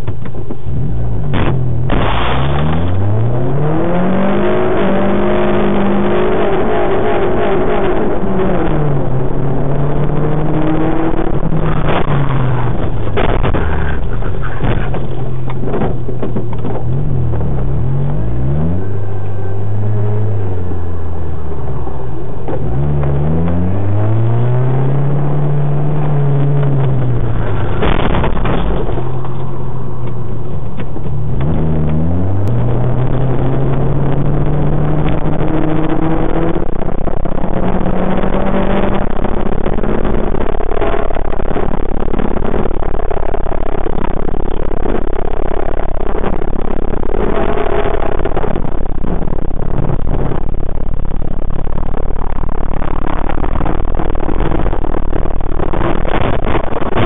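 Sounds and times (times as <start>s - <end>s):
car engine accelerating: 0.0s - 57.0s.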